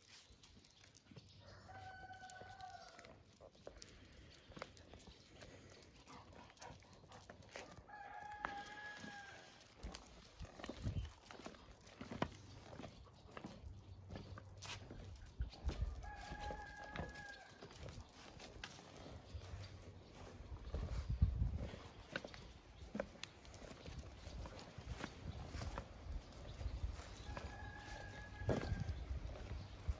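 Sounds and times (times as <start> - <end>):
rooster crowing: 1.4 - 3.1, 7.7 - 9.6, 15.8 - 17.6, 27.3 - 29.0.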